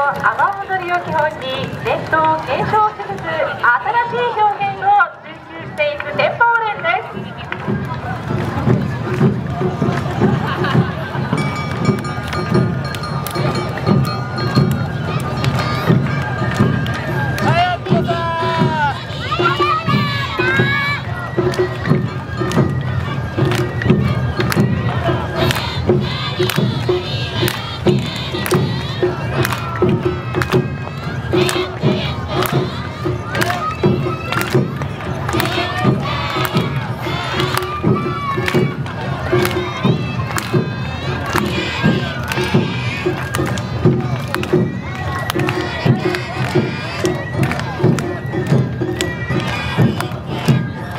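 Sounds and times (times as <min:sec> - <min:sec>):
festival drum beats: 0:00.0 - 0:50.9
sharp percussion strikes: 0:07.0 - 0:50.9
children shouting dance calls: 0:13.2 - 0:50.9.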